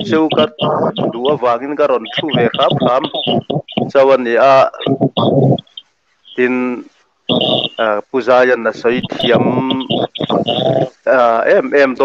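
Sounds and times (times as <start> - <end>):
man talking over video call: 0.0 - 5.4, 6.4 - 12.0.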